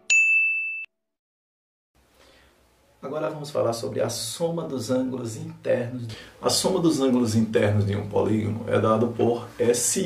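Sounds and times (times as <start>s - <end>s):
high bell-like ding: 0.0s - 0.9s.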